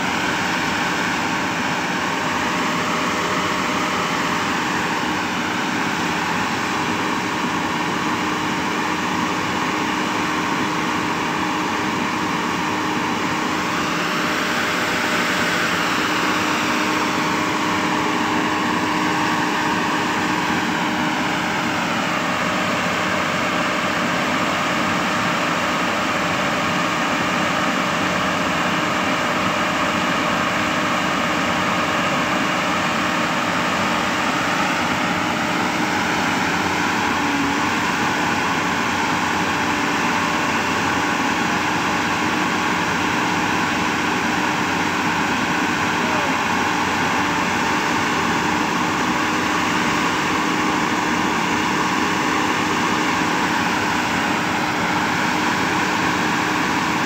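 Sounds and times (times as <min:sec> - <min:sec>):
heavy diesel engines running: 0:00.0 - 0:57.0.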